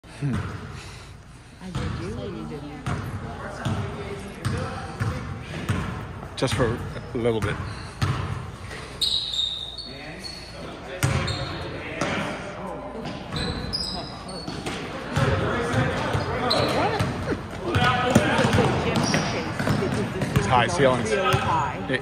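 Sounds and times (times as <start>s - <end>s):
sneakers squeaking: 1.7s - 12.4s, 13.0s - 21.6s
spectators' voices: 14.3s - 22.0s.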